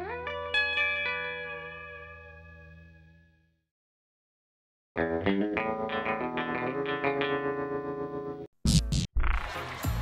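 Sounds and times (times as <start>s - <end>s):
guitar chord ringing: 0.0s - 3.3s, 5.0s - 8.5s.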